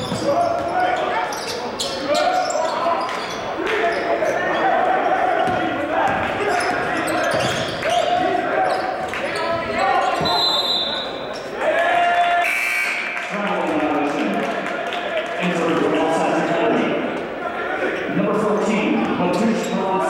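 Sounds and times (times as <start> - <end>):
basketball bouncing: 0.0 - 0.8, 5.4 - 8.2
sneakers squeaking on court: 0.0 - 11.5.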